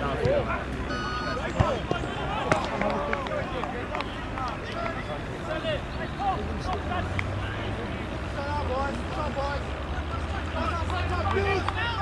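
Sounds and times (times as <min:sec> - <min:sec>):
distant players shouting: 0:00.0 - 0:12.0
football being kicked: 0:01.6 - 0:02.6.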